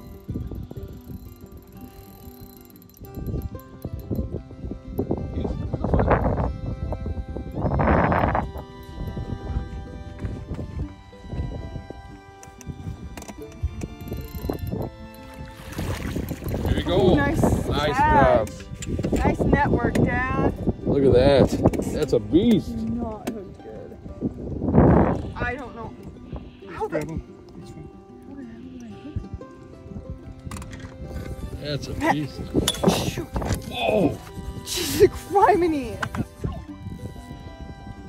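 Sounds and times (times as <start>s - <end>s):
background music with held notes: 0.0s - 38.0s.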